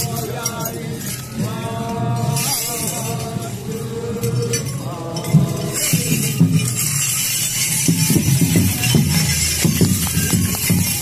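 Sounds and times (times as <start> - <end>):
metallic jangling of staffs: 4.2 - 11.0.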